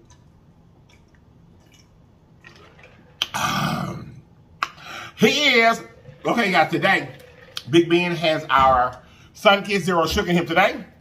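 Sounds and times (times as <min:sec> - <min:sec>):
person gulping a drink: 0:00.0 - 0:07.7.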